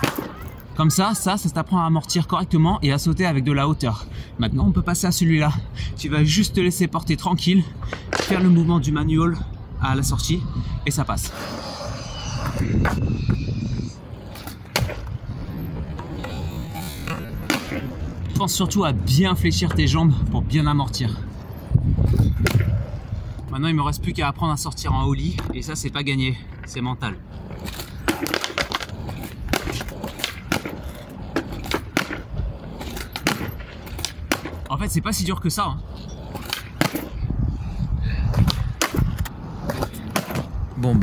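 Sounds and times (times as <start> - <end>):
sharp skateboard clack: 0.0 - 0.6, 12.3 - 18.2, 22.2 - 23.0, 27.5 - 34.7, 36.2 - 37.2, 38.3 - 40.6
skateboard wheels rolling on concrete: 0.0 - 41.0.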